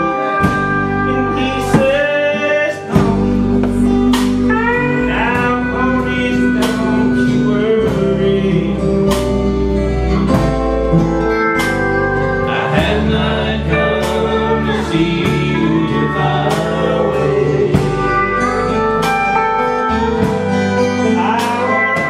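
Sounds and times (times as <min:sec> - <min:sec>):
man singing: 0:00.0 - 0:10.1, 0:12.3 - 0:19.2, 0:20.8 - 0:22.0
steel guitar sliding notes: 0:00.0 - 0:22.0
strummed acoustic guitar: 0:00.0 - 0:22.0.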